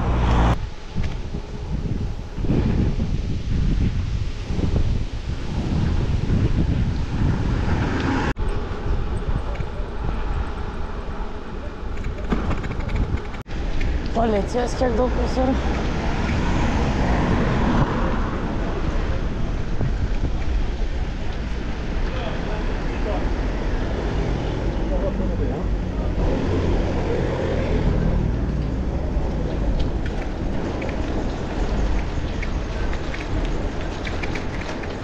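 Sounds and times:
car traffic: 0:00.0 - 0:02.8, 0:05.4 - 0:35.0
wind rushing over microphone: 0:00.0 - 0:35.0.

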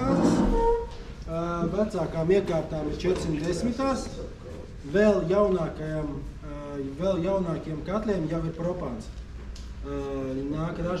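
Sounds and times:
man speaking: 0:00.0 - 0:00.6, 0:01.3 - 0:09.1, 0:09.8 - 0:11.0.

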